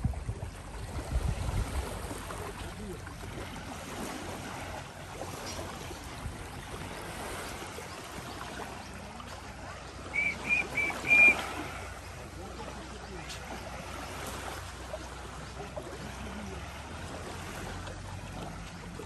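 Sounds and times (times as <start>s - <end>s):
small waves lapping on sand: 0.0s - 19.0s
short high-pitched chirps: 10.1s - 11.4s.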